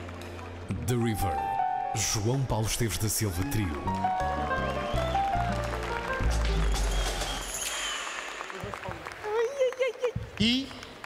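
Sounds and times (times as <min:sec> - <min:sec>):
piano notes: 0:00.9 - 0:07.5.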